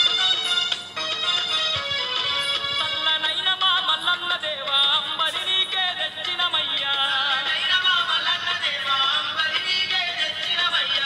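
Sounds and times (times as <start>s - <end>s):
music with sung melody: 0.0s - 11.0s.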